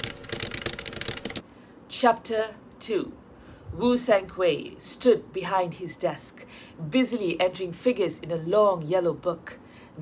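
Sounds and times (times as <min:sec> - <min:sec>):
keyboard keystroke clicks: 0:00.0 - 0:01.4.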